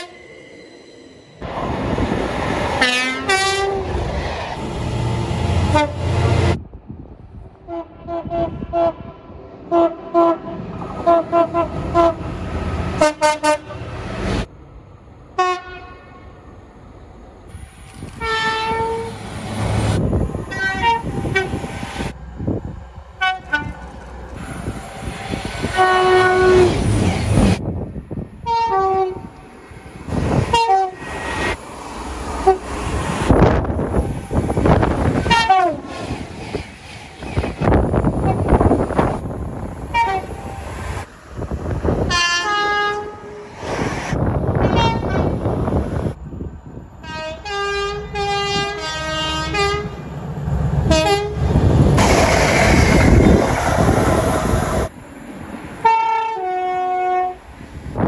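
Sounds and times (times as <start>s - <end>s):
rumble of passing train: 0.0s - 58.0s
train horns: 2.8s - 3.9s, 5.6s - 6.6s, 7.6s - 12.3s, 13.0s - 13.9s, 15.4s - 16.2s, 18.2s - 19.2s, 20.5s - 21.6s, 23.2s - 23.8s, 25.6s - 26.9s, 28.4s - 29.3s, 30.5s - 31.0s, 35.2s - 35.9s, 39.9s - 40.6s, 42.1s - 43.4s, 44.6s - 45.4s, 47.0s - 50.0s, 50.8s - 51.5s, 55.8s - 57.5s.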